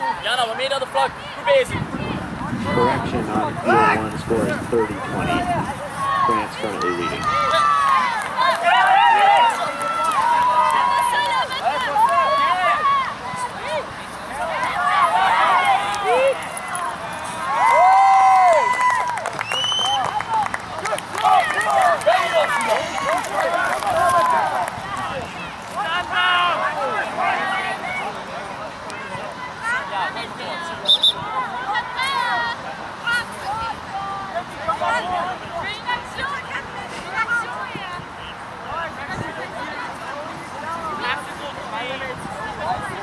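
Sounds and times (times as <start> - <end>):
people shouting: 5.0 - 19.1, 20.2 - 28.1.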